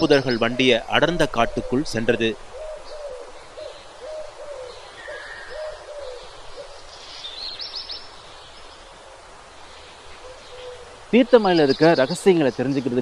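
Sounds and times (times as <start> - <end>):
bird hooting: 0.0 - 8.0, 10.1 - 12.1
bird chirping trill: 0.0 - 9.0, 9.8 - 13.0.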